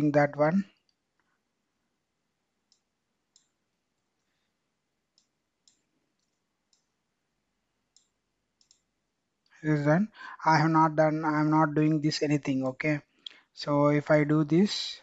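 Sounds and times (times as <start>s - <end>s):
keyboard and mouse clicks: 5.1s - 6.9s, 7.9s - 8.9s.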